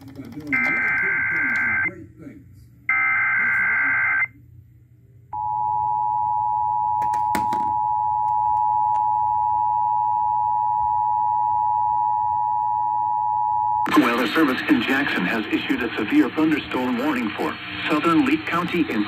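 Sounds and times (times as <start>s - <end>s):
two-tone alert signal: 0.5s - 1.9s.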